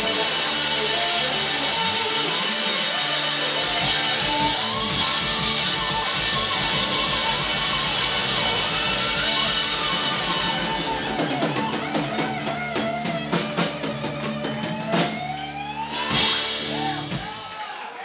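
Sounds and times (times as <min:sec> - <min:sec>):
bending electric guitar notes: 0:00.0 - 0:17.4
rock band playing: 0:00.0 - 0:18.0.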